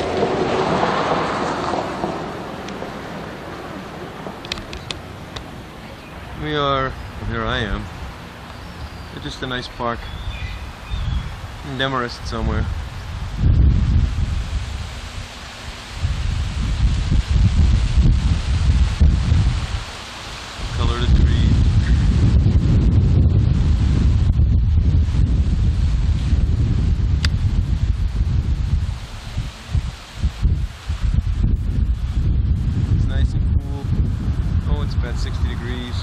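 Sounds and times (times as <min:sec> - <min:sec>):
wind buffeting microphone: 0:00.0 - 0:36.0.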